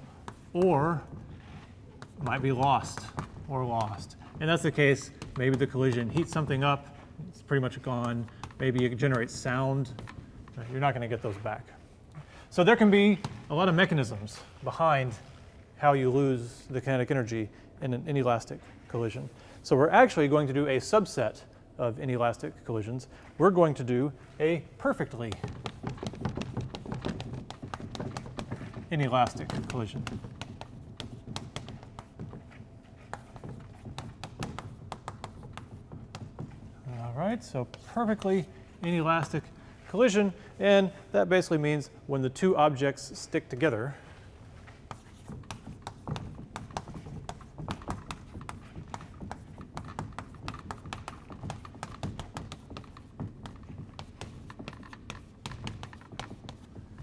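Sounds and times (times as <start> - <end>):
chalk tapping and scraping: 0.0 - 17.4, 18.0 - 57.0.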